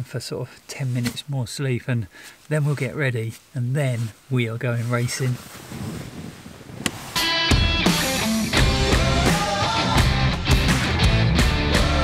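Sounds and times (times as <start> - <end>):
drums: 6.8 - 12.0
guitar-led rock music: 7.2 - 12.0.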